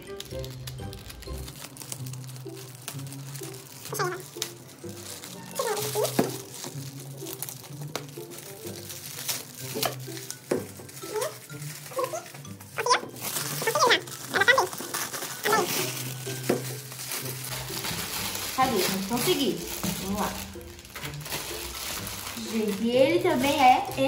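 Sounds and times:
background music: 0:00.0 - 0:24.0
foil wrapper crinkling and tearing: 0:00.0 - 0:24.0.

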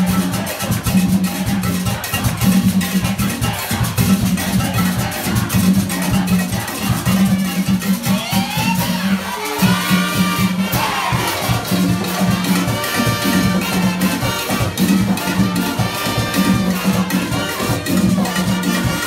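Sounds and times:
drum and percussion rhythm: 0:00.0 - 0:19.0
people shouting: 0:08.0 - 0:19.0.

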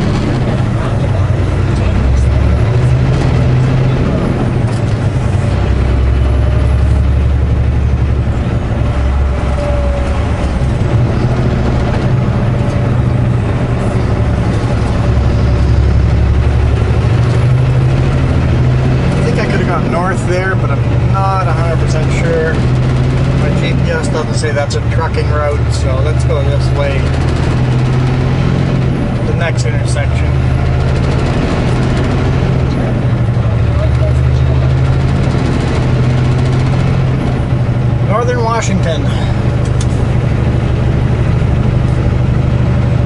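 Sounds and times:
diesel truck engine from cab: 0:00.0 - 0:43.0.

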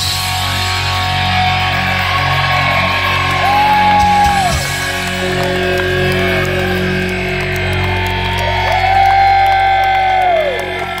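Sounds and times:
bending lead guitar notes: 0:00.0 - 0:09.3
live rock band playing: 0:00.0 - 0:10.0.

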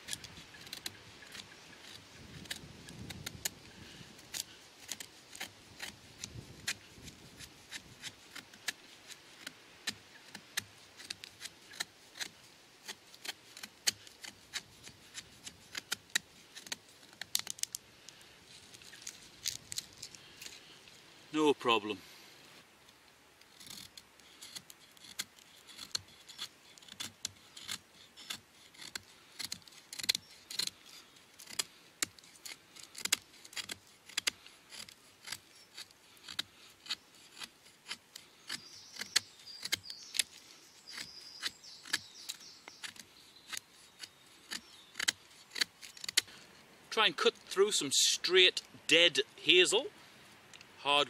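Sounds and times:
knife scraping wooden stick: 0:00.0 - 0:20.7, 0:23.4 - 0:46.6.

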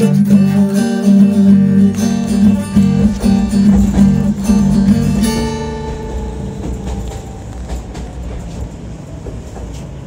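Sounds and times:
acoustic guitar notes: 0:00.0 - 0:06.8
train rumbling on rails: 0:01.2 - 0:10.0.

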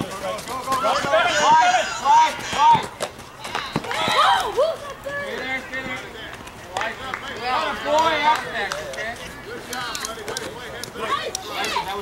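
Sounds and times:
children shouting: 0:00.8 - 0:05.2.

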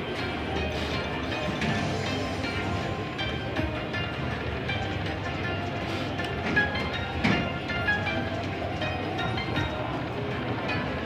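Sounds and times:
slot machine reels spinning: 0:00.8 - 0:05.5
electronic bonus music: 0:01.2 - 0:05.4.

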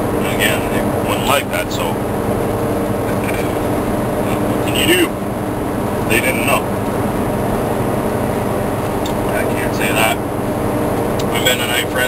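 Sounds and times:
truck engine and road drone: 0:00.0 - 0:12.0
man's voice: 0:04.3 - 0:05.2, 0:11.2 - 0:12.0.

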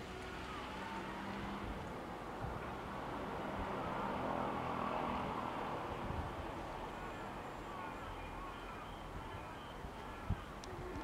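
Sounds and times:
vehicle passing rumble: 0:00.0 - 0:07.7.

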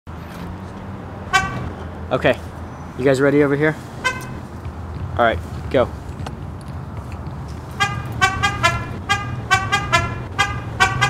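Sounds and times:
short car horn toot: 0:01.3 - 0:01.7, 0:04.0 - 0:04.4, 0:07.8 - 0:11.0.

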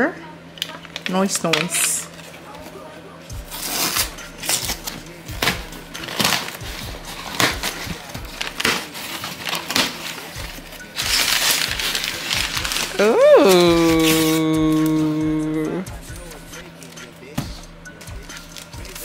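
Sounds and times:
cardboard crackling: 0:03.5 - 0:14.9
cardboard flaps tearing: 0:03.5 - 0:14.9
packing tape ripping off box: 0:03.5 - 0:15.2, 0:18.2 - 0:19.0.

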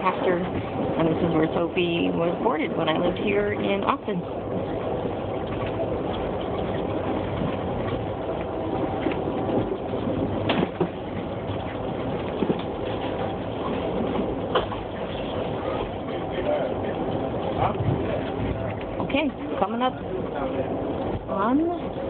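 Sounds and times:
car road and engine noise: 0:00.0 - 0:22.0.

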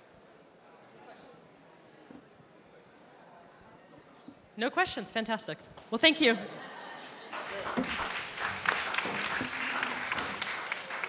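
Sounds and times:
audience applauding: 0:07.0 - 0:11.0.

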